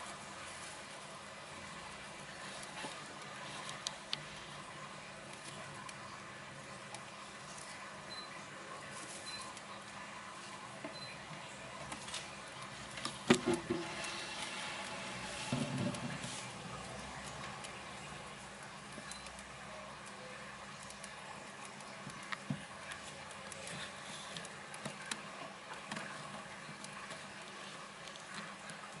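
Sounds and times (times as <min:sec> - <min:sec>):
gerbils rustling in hay: 0:00.0 - 0:05.8, 0:08.8 - 0:10.6, 0:11.8 - 0:19.0, 0:19.9 - 0:29.0.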